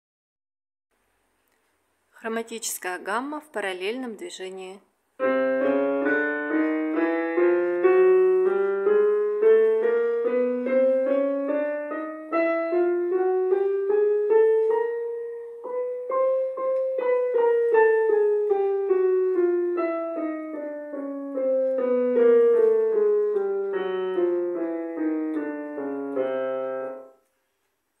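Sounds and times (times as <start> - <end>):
piano playing chromatic scale: 5.2 - 27.2.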